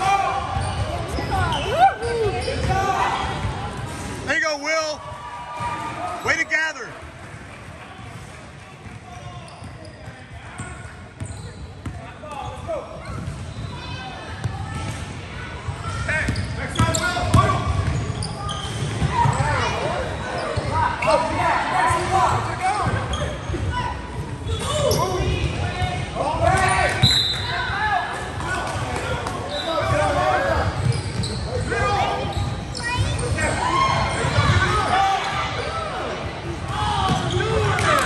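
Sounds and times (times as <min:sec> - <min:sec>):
sneakers squeaking on floor: 0:00.4 - 0:04.4, 0:08.9 - 0:14.8, 0:15.9 - 0:21.4, 0:22.3 - 0:27.7, 0:28.4 - 0:35.8, 0:36.9 - 0:37.9.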